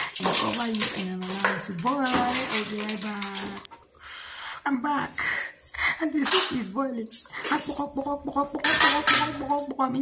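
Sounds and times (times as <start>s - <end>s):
metal cookware clinking on pot: 8.6s - 9.7s.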